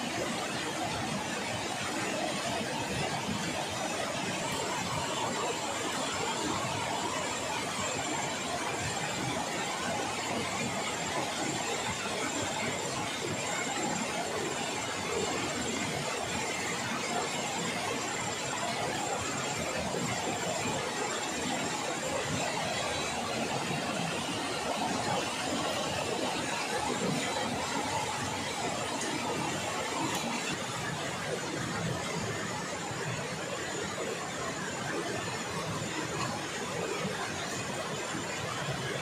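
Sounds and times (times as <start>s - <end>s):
river rushing: 13.2s - 39.0s.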